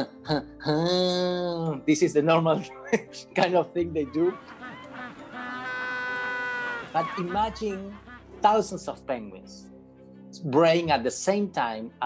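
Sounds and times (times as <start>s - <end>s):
penguin braying: 4.0s - 8.6s.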